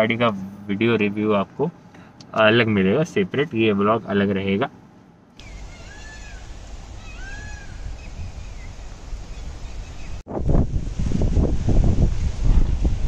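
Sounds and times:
animal calls: 5.4 - 8.1.

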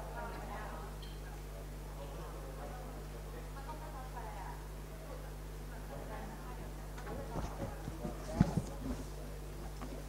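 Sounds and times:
faint voices murmuring: 4.9 - 10.0
low buzzing hum: 6.7 - 10.0.

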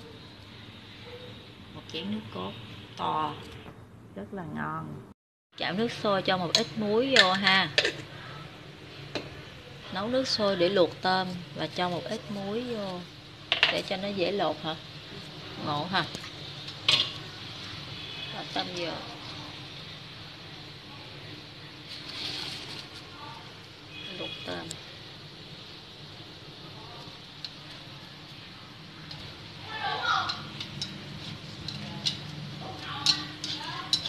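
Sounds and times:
water boiling in a wok: 5.6 - 34.0.

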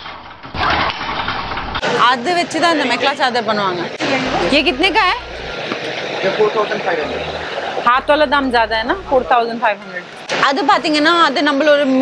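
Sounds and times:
faint voices talking: 1.8 - 12.0
rushing background noise: 1.9 - 12.0.

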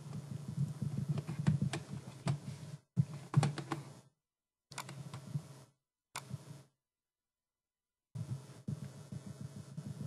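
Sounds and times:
keyboard typing and clicking: 3.2 - 3.9, 4.7 - 5.3.

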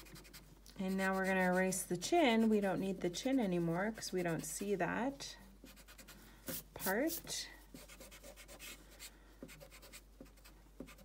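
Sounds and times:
eraser rubbing on paper: 5.7 - 8.8.

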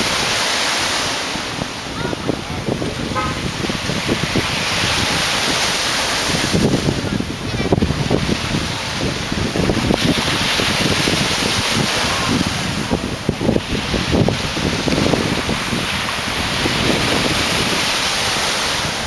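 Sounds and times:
sea waves: 0.0 - 19.0
wind buffeting microphone: 0.0 - 19.0.

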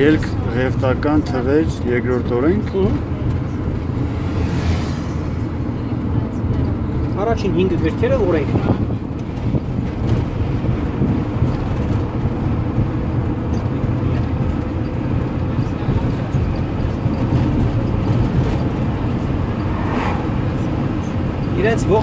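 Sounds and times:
vehicle engine and road noise: 0.0 - 22.0.

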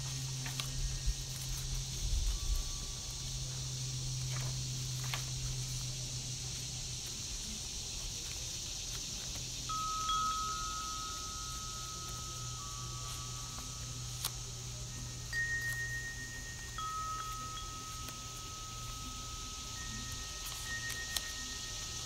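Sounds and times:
wind chimes ringing: 0.0 - 6.4, 9.6 - 22.0
steady high hiss: 0.0 - 22.0
paper pages rustling: 0.1 - 2.8, 4.1 - 9.4, 12.9 - 14.7, 20.0 - 21.8.

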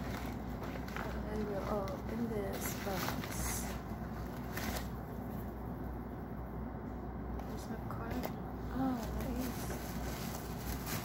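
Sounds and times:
paper bag rustling and crinkling: 0.0 - 5.5, 7.4 - 11.0.

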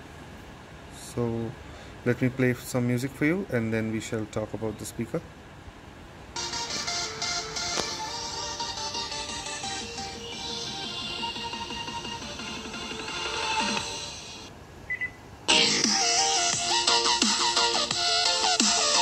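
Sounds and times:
electronic dance music on small speaker: 6.4 - 14.5, 15.5 - 19.0.

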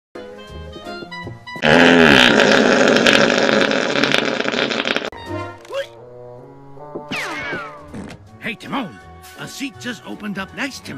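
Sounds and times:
cartoon fart sound effect: 1.6 - 5.2, 7.1 - 8.0
cartoon music: 7.1 - 7.9.

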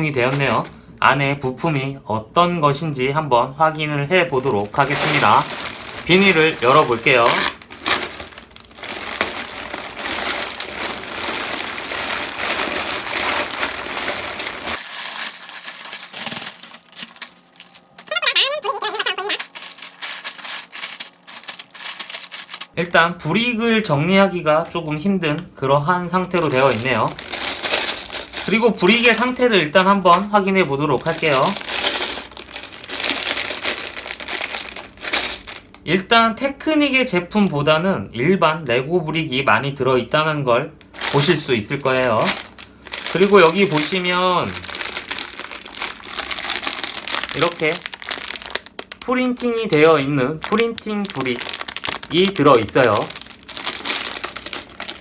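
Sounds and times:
plastic bags rustling and clicking: 0.0 - 0.8, 3.8 - 22.7, 26.1 - 36.0, 40.8 - 55.0
plastic mailer bag crinkling: 0.0 - 0.8, 3.8 - 22.8, 26.0 - 36.0, 40.8 - 55.0.

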